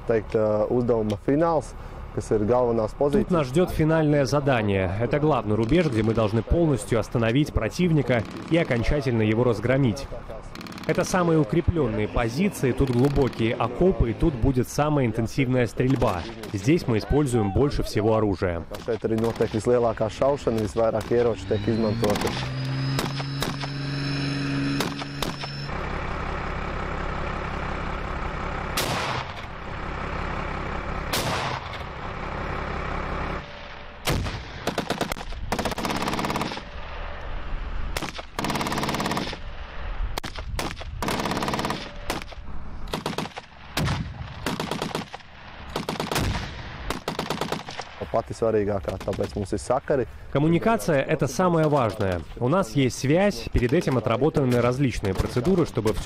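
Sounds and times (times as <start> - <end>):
gunfire: 10.5 - 11.4, 18.7 - 19.8, 22.0 - 23.8, 24.7 - 25.6, 28.8 - 29.5, 31.1 - 31.8, 34.0 - 36.8, 38.0 - 39.5, 40.2 - 48.0.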